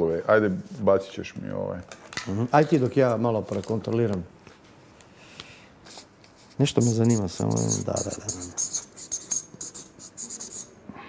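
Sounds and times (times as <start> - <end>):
pen scratching on paper: 6.7 - 10.7.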